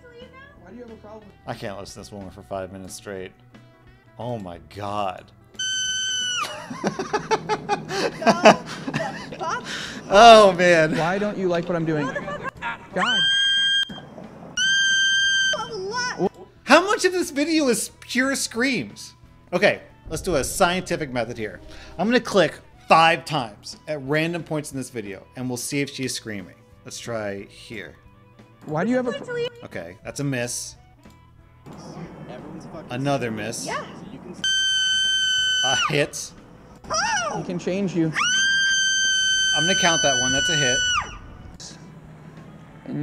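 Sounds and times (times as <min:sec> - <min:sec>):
people talking: 0:08.1 - 0:13.2, 0:15.6 - 0:25.7, 0:31.8 - 0:34.4
woman screaming: 0:36.9 - 0:37.4, 0:38.1 - 0:41.3.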